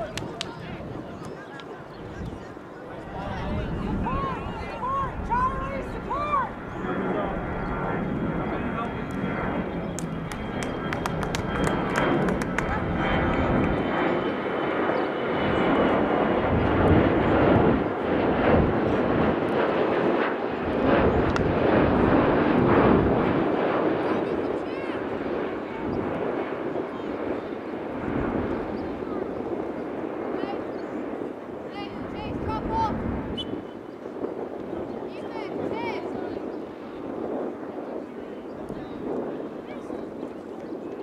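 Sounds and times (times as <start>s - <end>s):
voices calling across field: 0.0s - 14.4s, 23.9s - 37.0s
aircraft passing overhead: 0.0s - 41.0s.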